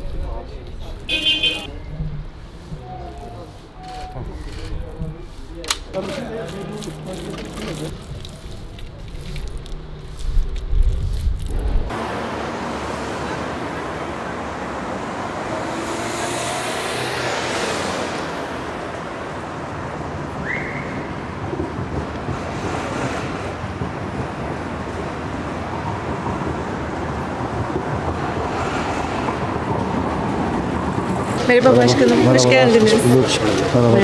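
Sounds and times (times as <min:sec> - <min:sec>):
distant road traffic: 0:00.0 - 0:34.0.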